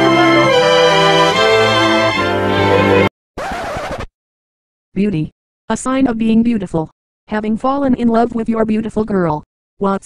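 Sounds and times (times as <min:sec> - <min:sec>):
logo music: 0:00.0 - 0:03.1
record scratch sound effect: 0:03.4 - 0:04.1.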